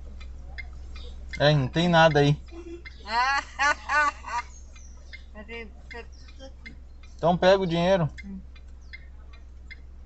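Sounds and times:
steady hum: 0:00.0 - 0:10.0
laughter: 0:02.5 - 0:04.5.

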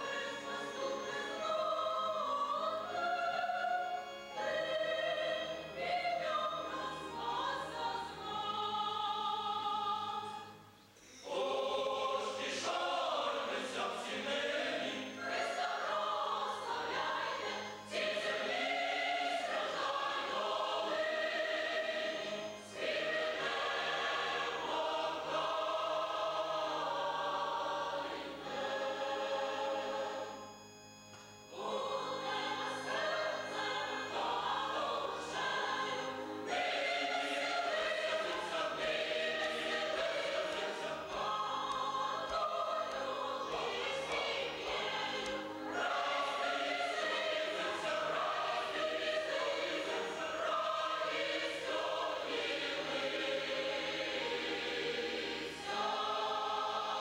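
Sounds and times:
choir singing a hymn: 0:00.0 - 0:57.0.

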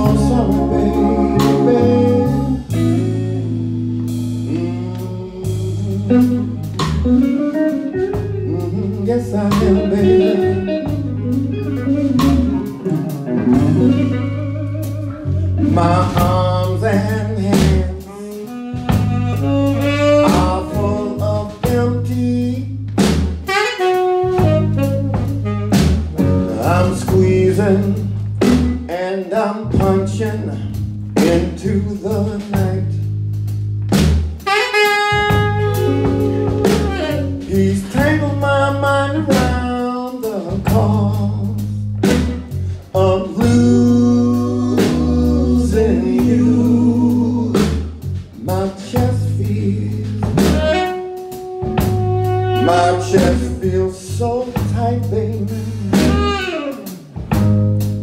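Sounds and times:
saxophone held notes: 0:00.0 - 0:16.5, 0:18.0 - 0:21.8, 0:23.4 - 0:28.9, 0:34.4 - 0:39.9, 0:50.4 - 0:53.8, 0:55.8 - 0:58.0
person singing: 0:00.0 - 0:22.8, 0:26.2 - 0:32.9, 0:35.8 - 0:51.0, 0:52.6 - 0:56.9
blues band playing slow ballad: 0:00.0 - 0:58.0
drum kit: 0:00.0 - 0:58.0
electric bass: 0:00.0 - 0:58.0
drum hit: 0:12.2 - 0:14.1.

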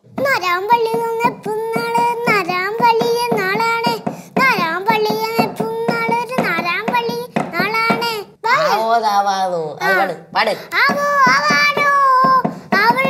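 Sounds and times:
child singing syllables: 0:00.1 - 0:08.8, 0:10.7 - 0:13.0.

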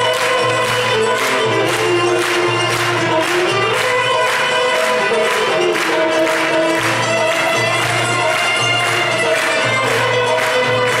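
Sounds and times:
instrumental ensemble music: 0:00.0 - 0:11.0
violin: 0:00.0 - 0:11.0.

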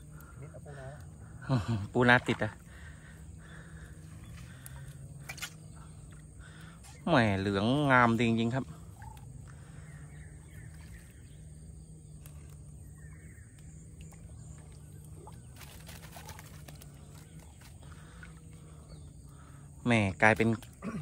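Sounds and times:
faint bird calls: 0:00.0 - 0:21.0
light water splashes: 0:00.0 - 0:21.0
low steady hum: 0:00.0 - 0:21.0.

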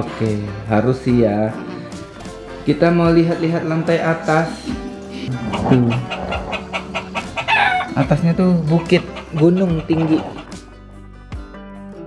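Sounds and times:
rooster crowing: 0:05.5 - 0:08.1.

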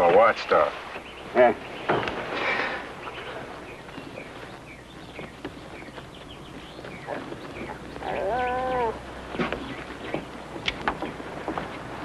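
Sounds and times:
birds chirping: 0:00.0 - 0:12.0
dog whining: 0:08.0 - 0:09.0.

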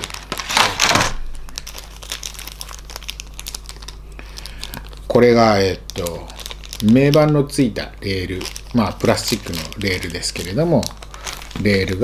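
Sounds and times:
packaging crinkling and rustling: 0:00.0 - 0:12.0.

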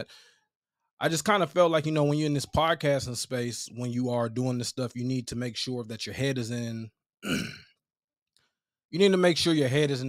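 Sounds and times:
man speaking: 0:01.0 - 0:06.9, 0:09.0 - 0:10.0
man clearing his throat: 0:07.2 - 0:07.8.

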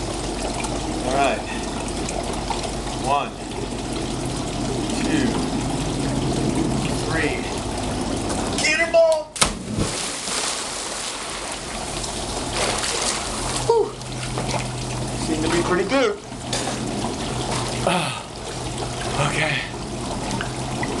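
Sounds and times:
water churning: 0:00.0 - 0:21.0
heavy splash into pool: 0:09.4 - 0:11.8, 0:12.5 - 0:13.7.

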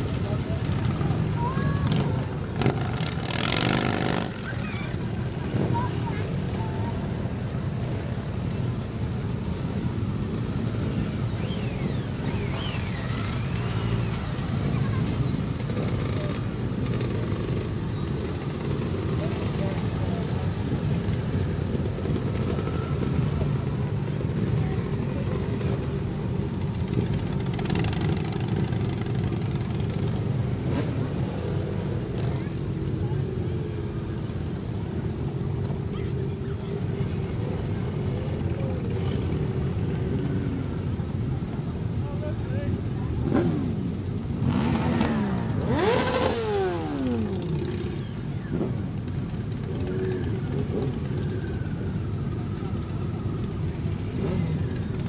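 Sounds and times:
engines revving: 0:00.0 - 0:08.2, 0:09.7 - 0:41.0, 0:42.8 - 0:55.0
motorcycle engines: 0:00.0 - 0:55.0.

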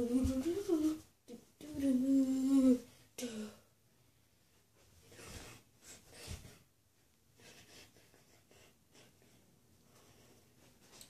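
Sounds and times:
boy humming a tune: 0:00.0 - 0:03.6.

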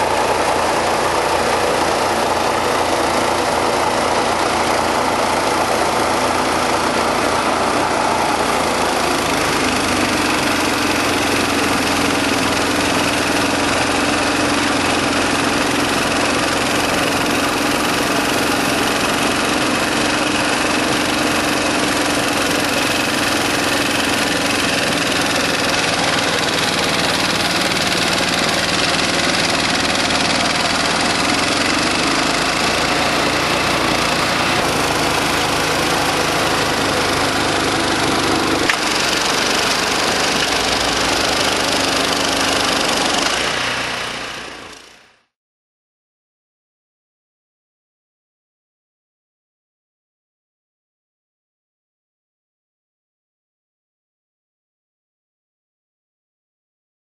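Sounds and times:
snow rushing from chute: 0:00.0 - 0:44.5
snowblower engine running: 0:00.0 - 0:45.3.

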